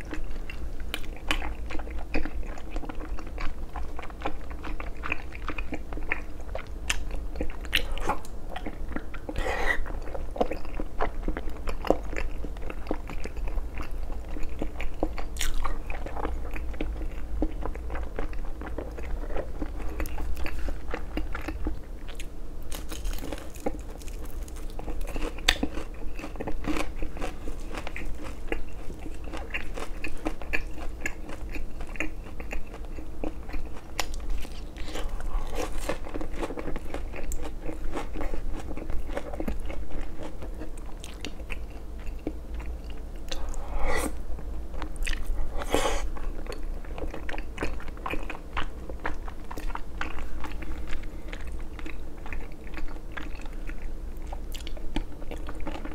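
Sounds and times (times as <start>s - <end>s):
crunchy chewing: 0.0s - 55.9s.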